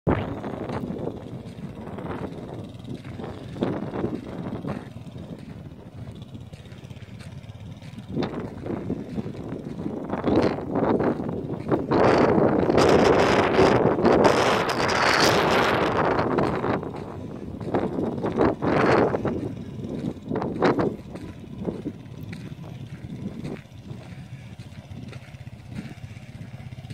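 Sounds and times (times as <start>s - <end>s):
distant atv engine: 0.1s - 26.9s
wind buffeting microphone: 0.1s - 26.9s.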